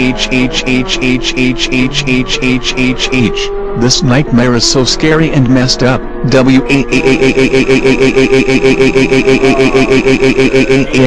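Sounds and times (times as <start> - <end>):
stuttering looped pitched cry: 0.0 - 3.5, 6.6 - 11.0
steady high tone: 0.0 - 3.6, 6.6 - 11.0.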